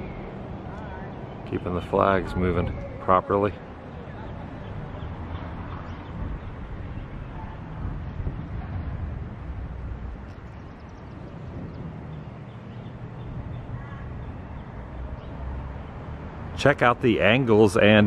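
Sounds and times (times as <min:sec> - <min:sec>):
wind rumble on microphone: 0:00.0 - 0:16.5.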